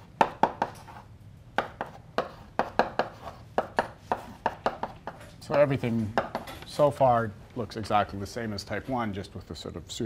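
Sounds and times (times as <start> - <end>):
chalk tapping on blackboard: 0.0 - 6.4.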